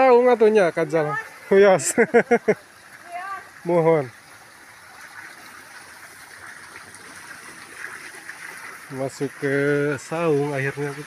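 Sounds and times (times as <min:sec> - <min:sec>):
running water rushing: 0:00.0 - 0:11.0.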